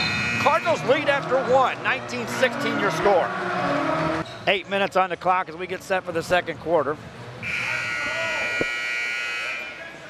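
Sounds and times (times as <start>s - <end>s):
scoreboard buzzer blast: 7.4s - 9.7s.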